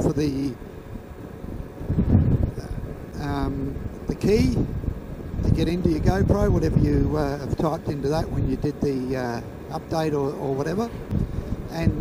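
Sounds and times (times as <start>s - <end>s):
motorcycle wind and engine rumble: 0.0s - 12.0s.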